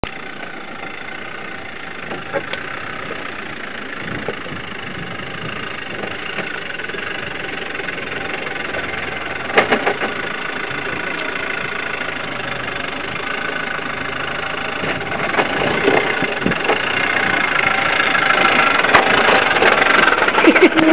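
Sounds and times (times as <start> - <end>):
truck engine at low revs: 0.0 - 20.9.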